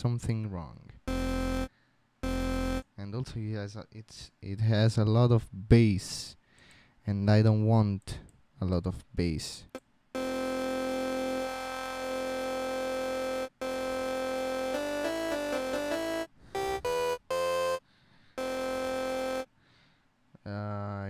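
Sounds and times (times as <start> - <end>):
synth tone notes: 1.1 - 2.8, 10.2 - 17.8, 18.4 - 19.5.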